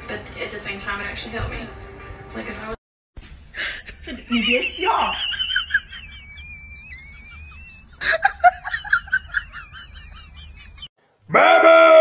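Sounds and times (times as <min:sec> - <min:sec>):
high-pitched giggling: 0:03.6 - 0:10.9
sustained vocal cry: 0:11.3 - 0:12.0.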